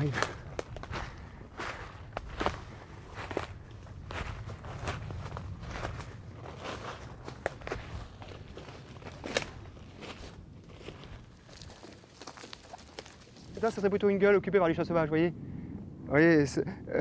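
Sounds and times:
footsteps crackling on woodland ground: 0.0s - 14.3s.

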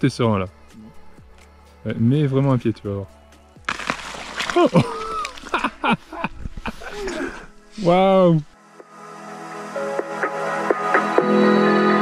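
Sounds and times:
thin ice cracking underfoot: 3.6s - 5.8s
ice squeaking: 3.7s - 5.8s.

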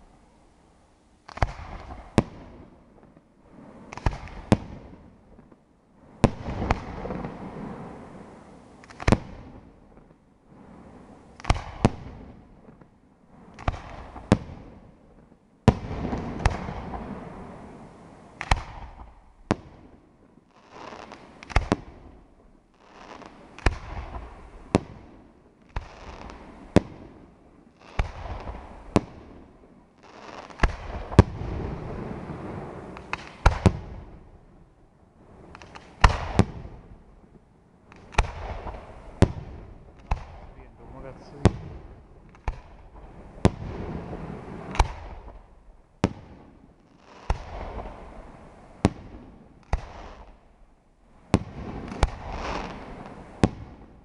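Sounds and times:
firework shells bursting: 32.4s - 34.0s.

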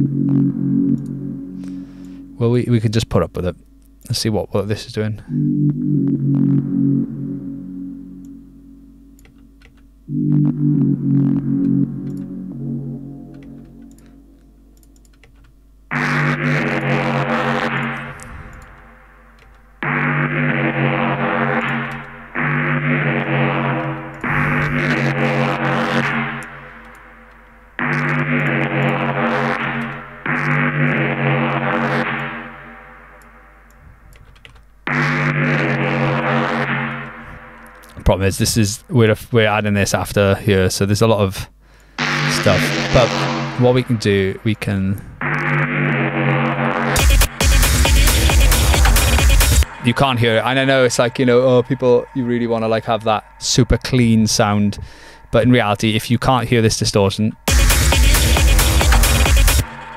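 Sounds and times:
sustained synthesizer chords: 0.0s - 4.3s, 5.1s - 38.9s, 42.0s - 56.7s, 57.3s - 59.9s.

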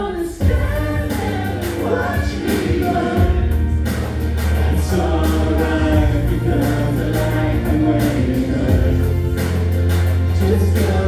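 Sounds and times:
pop-rap backing track with heavy bass: 0.0s - 11.0s.

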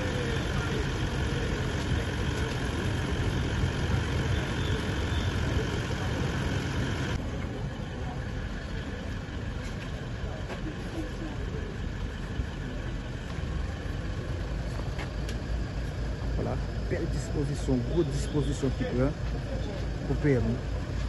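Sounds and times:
faint whine-like hum: 0.0s - 21.0s
outdoor background noise: 0.0s - 21.0s
vehicle engine idling: 0.0s - 21.0s.

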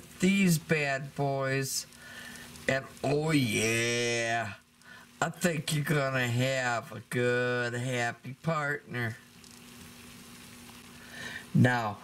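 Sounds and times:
faint sizzle in a pot: 0.0s - 12.0s
low steady hum: 0.0s - 12.0s.

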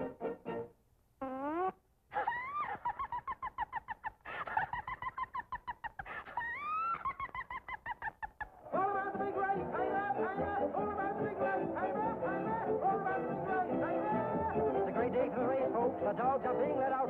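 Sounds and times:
cartoon dog crying: 1.3s - 8.6s.

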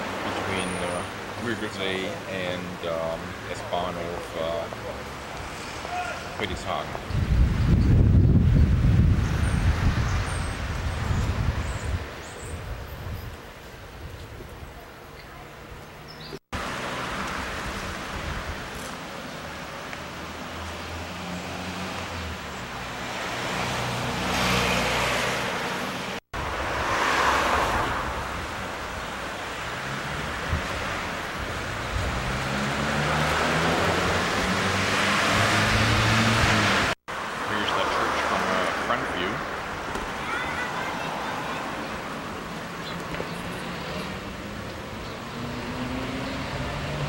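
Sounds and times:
cars driving past: 16.6s - 47.0s.

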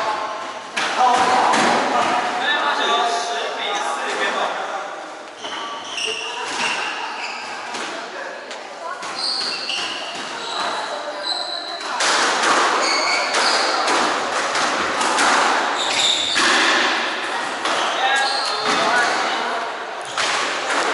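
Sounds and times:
shoes squeaking on wooden floor: 5.3s - 7.8s, 9.0s - 11.9s, 12.7s - 13.9s, 15.8s - 16.6s, 17.6s - 19.2s
racket striking squash ball: 11.9s - 17.9s.

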